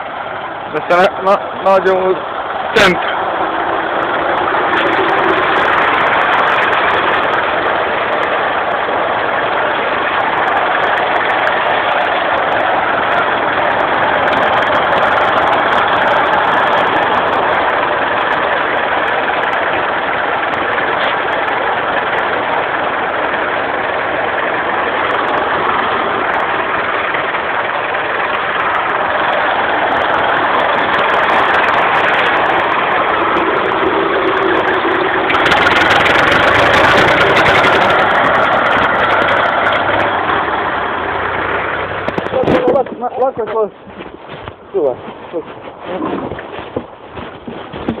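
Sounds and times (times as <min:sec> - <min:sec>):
tractor diesel engine running: 0:00.0 - 0:48.0.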